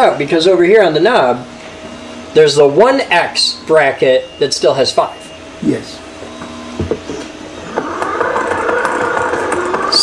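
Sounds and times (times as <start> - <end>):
hand-crank generator gears whirring: 6.3 - 10.0.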